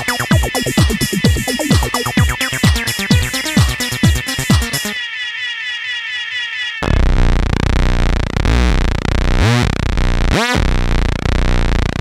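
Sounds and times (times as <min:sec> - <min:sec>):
kick drum: 0:00.0 - 0:04.9
rising synth sweeps: 0:00.0 - 0:07.2
falling synth tones: 0:00.0 - 0:07.6
loud dense synthesizer: 0:00.0 - 0:12.0.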